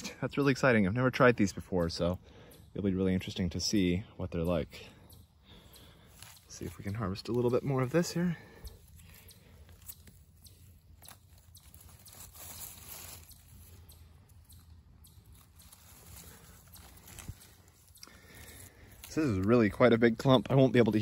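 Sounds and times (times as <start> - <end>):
dry leaf litter crackling: 4.8 - 21.0
mushroom crunching and tearing: 5.9 - 21.0.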